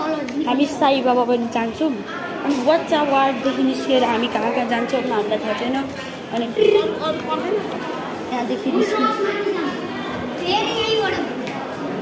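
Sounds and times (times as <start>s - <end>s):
background chatter: 0.0s - 12.0s
people talking: 0.0s - 12.0s.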